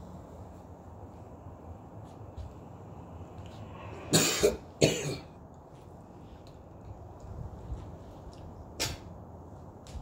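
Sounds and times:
person coughing: 0:04.1 - 0:05.4.

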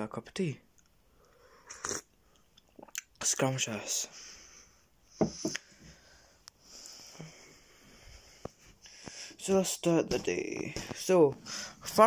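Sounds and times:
person slurping tea: 0:01.6 - 0:02.1.

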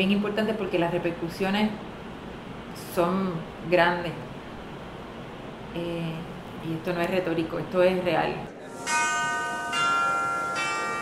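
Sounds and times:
bell-like chimes: 0:08.8 - 0:11.0.

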